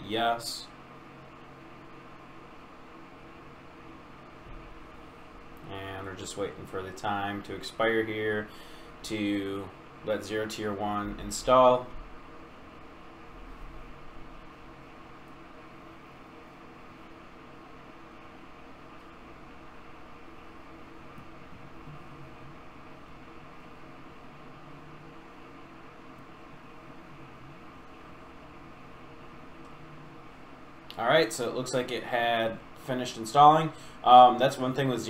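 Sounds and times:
faint low hum: 0:00.0 - 0:35.0.

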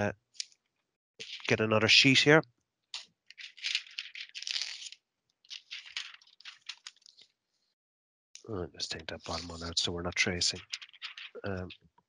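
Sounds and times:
paper rustling and crinkling: 0:01.2 - 0:01.6, 0:03.3 - 0:07.3, 0:09.2 - 0:09.7, 0:10.5 - 0:11.6.

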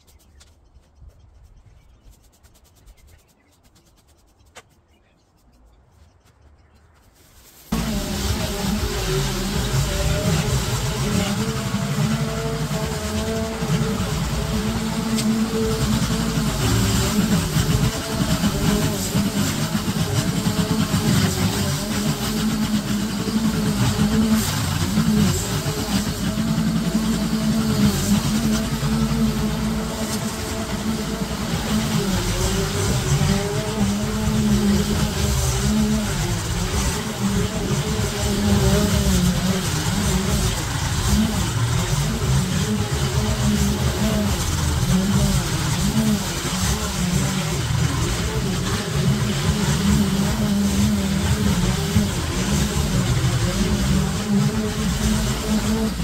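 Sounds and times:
small petrol engine running: 0:07.4 - 0:56.0.

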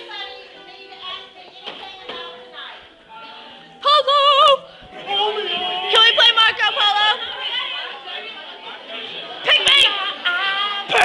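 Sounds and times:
chatter of young voices: 0:00.0 - 0:11.0.

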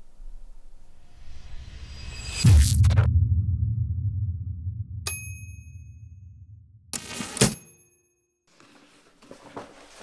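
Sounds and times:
low rumble: 0:01.0 - 0:05.1
bright ringing ding: 0:05.1 - 0:06.2.

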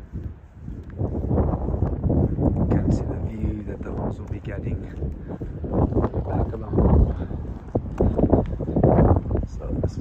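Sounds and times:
footsteps on pavement: 0:00.0 - 0:10.0
wind buffeting microphone: 0:00.0 - 0:10.0.

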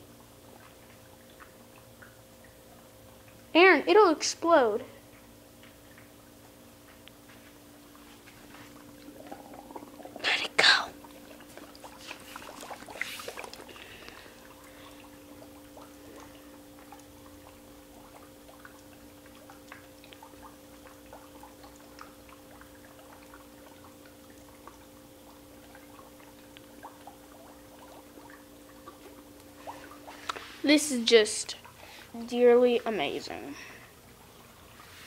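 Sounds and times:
steady low hum: 0:00.0 - 0:35.0
dry ice bubbling in water: 0:04.8 - 0:34.9.

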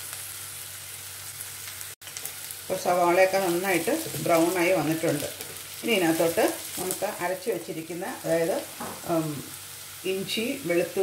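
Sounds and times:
onion sizzling in oil: 0:00.0 - 0:11.0
person speaking: 0:02.9 - 0:09.5.

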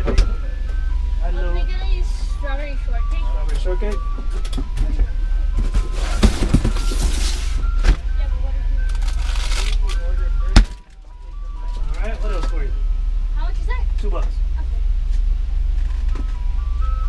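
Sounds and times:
ice cream truck jingle: 0:00.0 - 0:17.0.

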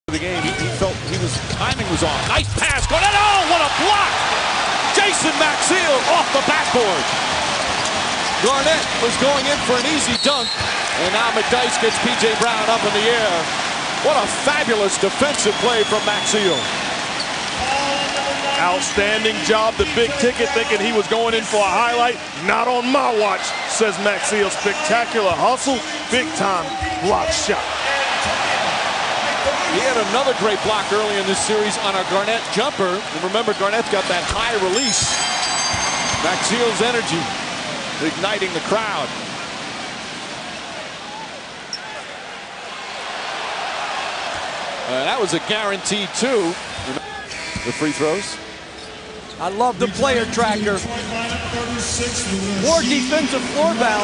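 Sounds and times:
arena crowd noise: 0:00.0 - 0:54.0
commentator speaking: 0:08.4 - 0:16.6, 0:17.6 - 0:27.7, 0:29.4 - 0:35.1, 0:38.0 - 0:39.1, 0:49.4 - 0:54.0.

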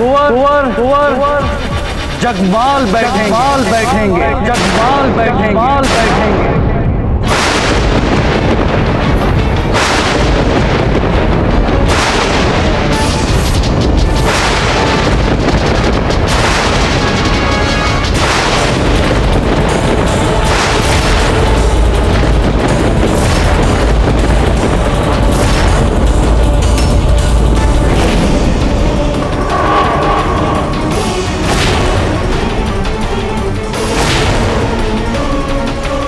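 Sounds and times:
dramatic orchestral score: 0:00.0 - 0:36.0
heavy bass rumble: 0:00.0 - 0:36.0
deep booming hits: 0:01.2 - 0:36.0.

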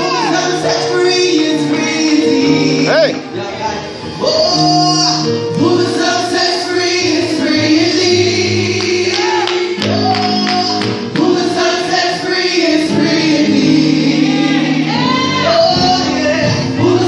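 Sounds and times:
gospel choir singing in harmony: 0:00.0 - 0:17.0.

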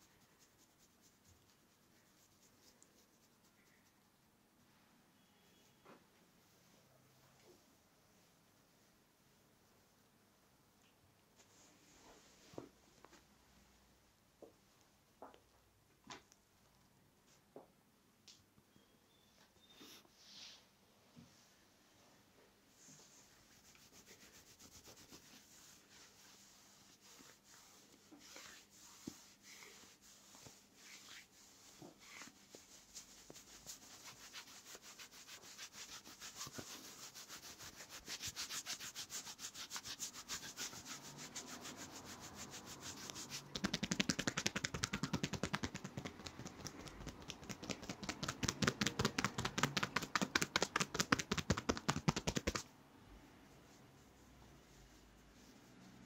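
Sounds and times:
hands rubbing on fabric: 0:00.0 - 0:04.0, 0:22.7 - 0:52.7, 0:53.6 - 0:56.0.

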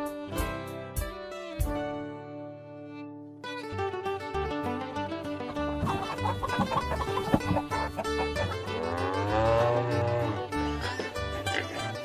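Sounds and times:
backing music: 0:03.5 - 0:12.0
cow mooing: 0:08.8 - 0:10.4.

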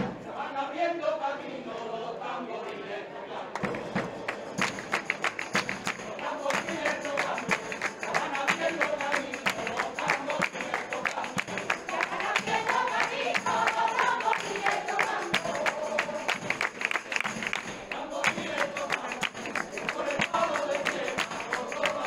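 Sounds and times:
crowd singing flamenco song: 0:00.0 - 0:22.0
fast percussion beat: 0:03.6 - 0:22.0.

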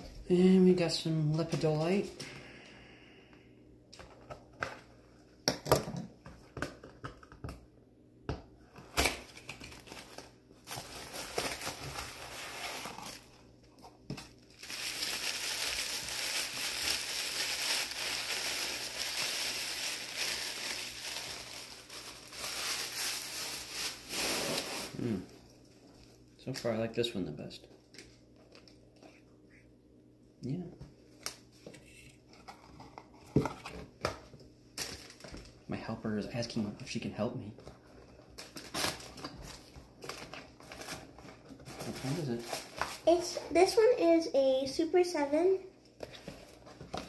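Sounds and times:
paper crinkling: 0:14.3 - 0:24.8.

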